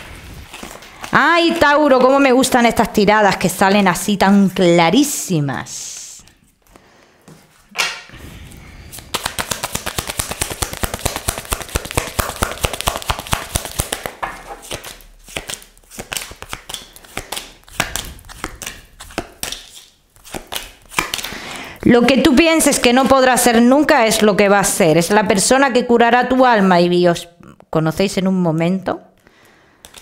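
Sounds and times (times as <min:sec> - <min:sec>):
cards being shuffled: 0:00.2 - 0:02.2, 0:08.9 - 0:21.4.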